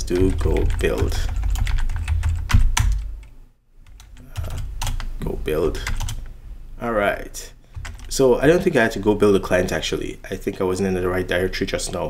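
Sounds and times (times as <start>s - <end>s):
typing on computer keyboard: 0.0s - 5.1s, 5.8s - 6.2s, 7.7s - 8.1s.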